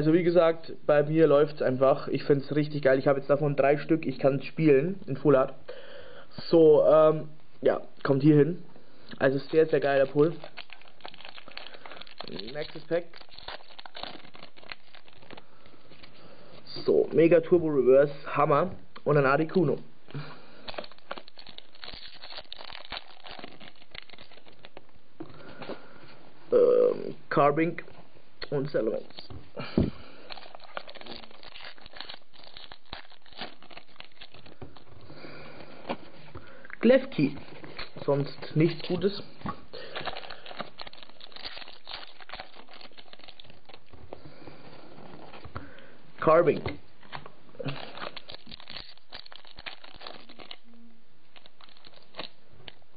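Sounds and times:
foil wrapper crinkling and tearing: 0:09.1 - 0:16.7, 0:19.6 - 0:25.0, 0:28.4 - 0:52.9
trading cards rustling and clicking: 0:09.2 - 0:16.2, 0:19.6 - 0:25.8, 0:28.4 - 0:45.7, 0:46.3 - 0:50.6, 0:51.3 - 0:52.9.

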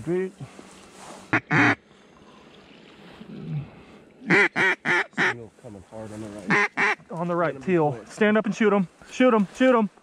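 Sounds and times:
duck call quacks: 0:01.3 - 0:01.8, 0:04.2 - 0:05.4, 0:06.5 - 0:07.0.

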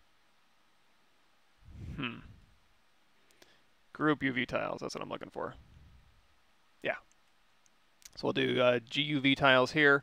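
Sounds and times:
man murmuring: 0:01.7 - 0:02.4.

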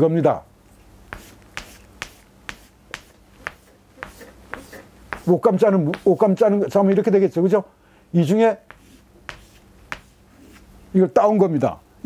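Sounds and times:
chalk tapping on blackboard: 0:01.1 - 0:07.2, 0:08.6 - 0:10.7.

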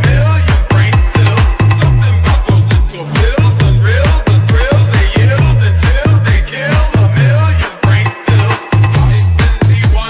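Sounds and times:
deep bass line: 0:00.0 - 0:10.0
electronic dance music: 0:00.0 - 0:10.0
heavy kick drum: 0:00.0 - 0:10.0.

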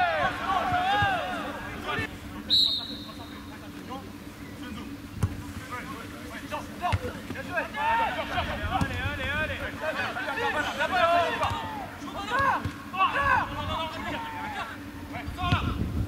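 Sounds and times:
voices calling out: 0:00.0 - 0:05.1, 0:05.8 - 0:15.7
referee's whistle: 0:02.5 - 0:03.4
football being kicked: 0:05.2 - 0:05.4.

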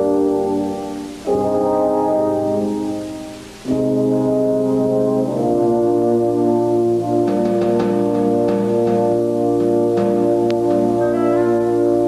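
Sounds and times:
orchestral brass chords: 0:00.0 - 0:12.0.

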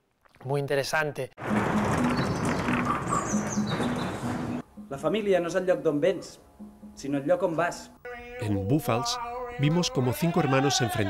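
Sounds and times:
wheeled machines rolling rumble: 0:01.4 - 0:04.6.

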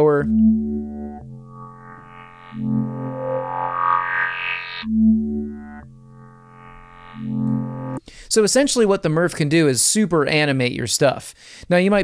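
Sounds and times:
filtered synth bass: 0:00.0 - 0:08.0.

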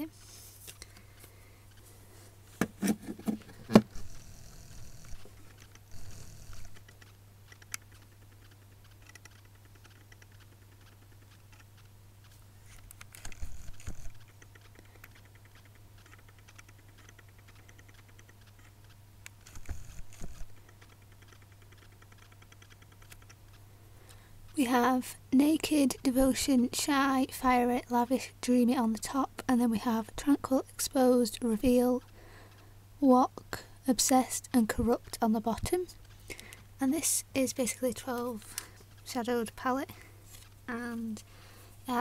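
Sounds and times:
steady low hum: 0:00.0 - 0:42.0.

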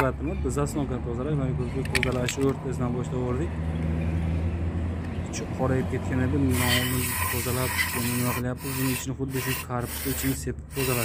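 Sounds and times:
aerosol spray hissing: 0:09.9 - 0:11.0.

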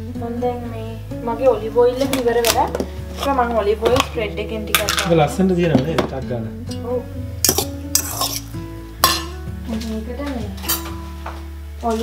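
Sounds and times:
background music: 0:00.0 - 0:12.0
metal fork scraping a saucepan: 0:07.4 - 0:09.4.

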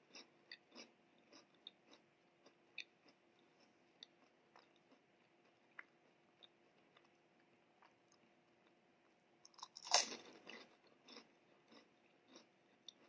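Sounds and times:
chewing crunchy snack: 0:00.0 - 0:08.3, 0:09.5 - 0:13.0.

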